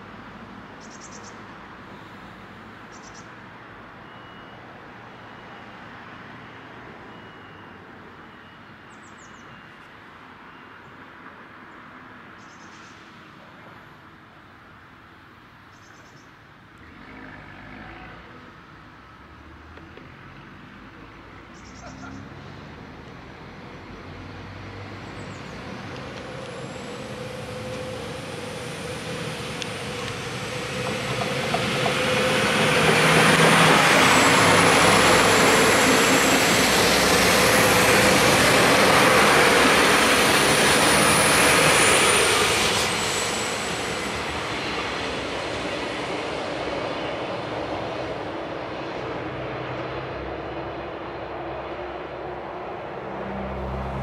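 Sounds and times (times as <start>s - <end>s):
diesel train engine and wheels: 0.0s - 54.0s.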